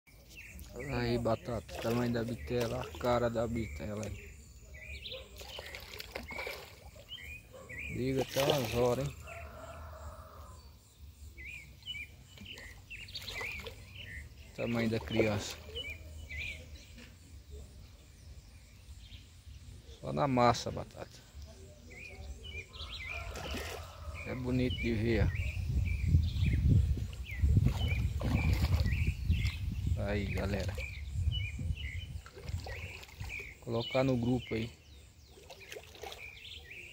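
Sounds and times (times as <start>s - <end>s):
birds chirping: 0.1s - 36.9s.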